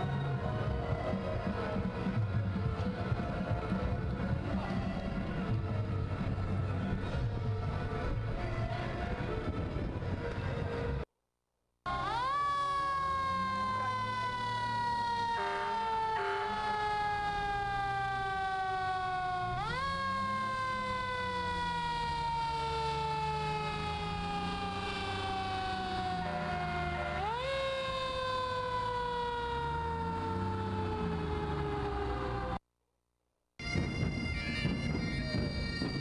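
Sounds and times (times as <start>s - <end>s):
truck engine rumble: 0.0s - 11.1s, 11.9s - 32.6s
mechanical siren wailing: 11.9s - 32.6s.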